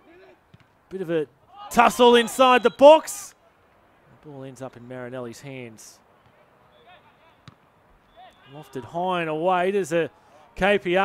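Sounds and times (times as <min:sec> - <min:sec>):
distant players' voices: 0:00.2 - 0:11.0.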